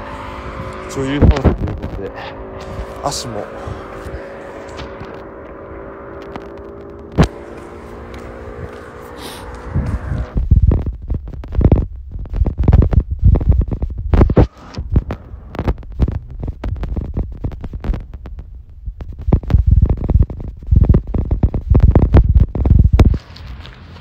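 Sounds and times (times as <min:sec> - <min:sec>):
wind buffeting microphone: 0:00.0 - 0:23.2.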